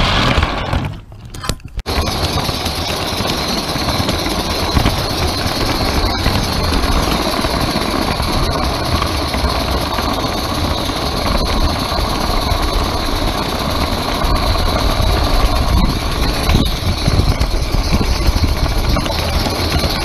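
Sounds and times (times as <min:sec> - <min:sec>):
train wheels rolling on track: 0:01.8 - 0:20.0.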